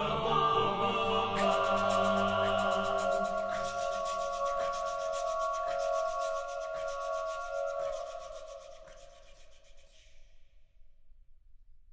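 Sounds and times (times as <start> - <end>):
male choir singing: 0.0 - 8.2
pulsing breathy hiss: 1.0 - 9.0.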